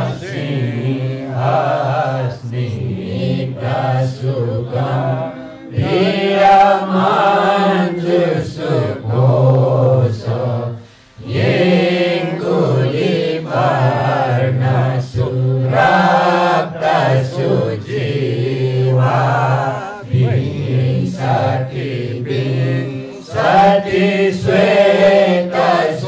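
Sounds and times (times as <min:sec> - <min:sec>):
group of voices chanting: 0:11.2 - 0:26.0.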